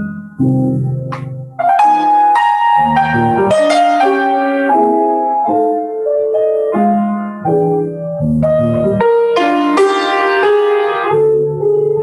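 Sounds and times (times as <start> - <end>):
grand piano playing: 0.0 - 12.0.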